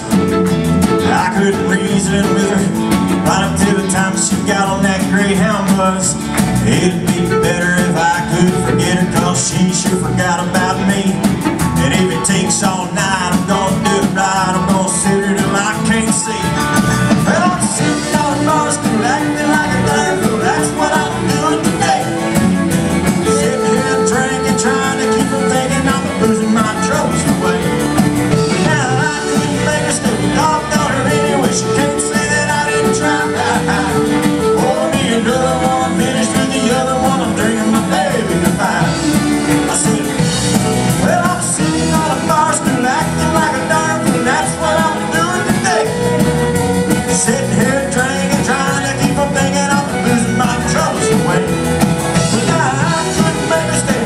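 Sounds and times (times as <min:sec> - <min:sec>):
drums beating: 0:00.0 - 0:54.0
guitar: 0:00.0 - 0:54.0
live country band playing: 0:00.0 - 0:54.0
man singing: 0:00.0 - 0:54.0.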